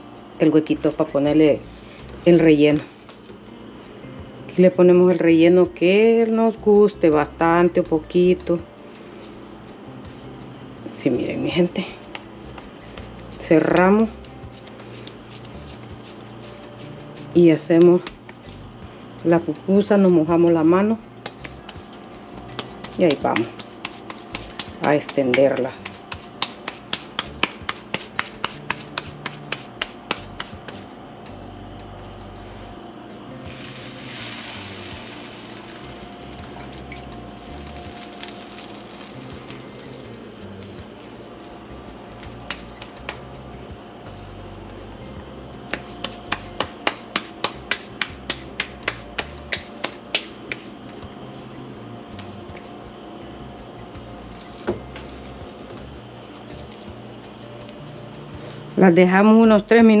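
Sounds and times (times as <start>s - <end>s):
background music: 0.0s - 60.0s
hands slapping dough: 12.0s - 18.4s, 21.2s - 30.9s, 34.4s - 43.4s, 44.6s - 51.1s.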